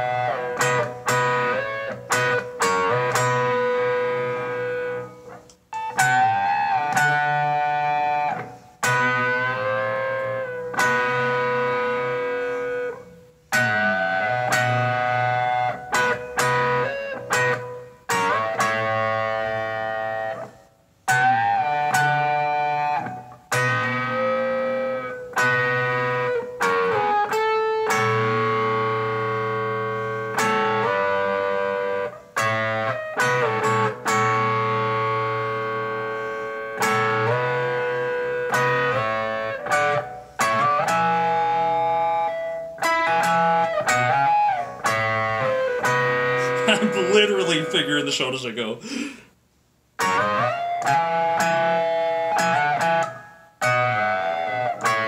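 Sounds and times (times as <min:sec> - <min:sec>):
distorted electric guitar: 0:00.0 - 0:49.1, 0:50.0 - 0:55.0.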